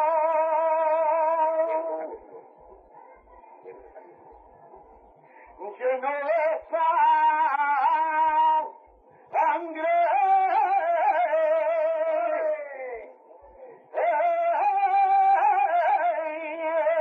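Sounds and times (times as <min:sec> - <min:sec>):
man singing unaccompanied: 0:00.0 - 0:02.1, 0:05.6 - 0:13.2, 0:13.9 - 0:17.0.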